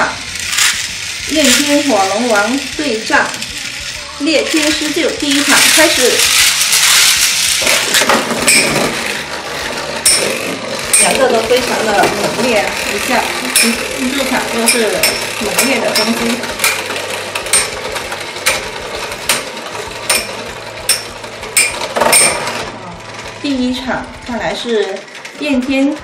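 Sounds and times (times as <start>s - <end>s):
spinning tops whirring and scraping: 0.0s - 26.0s.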